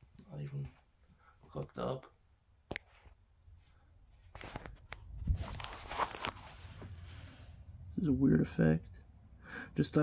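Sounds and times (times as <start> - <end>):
handling rustling: 4.3 - 7.3.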